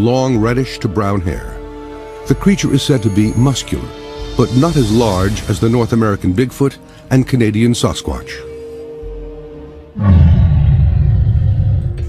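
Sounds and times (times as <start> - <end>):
loud deep rumble: 10.0 - 12.0.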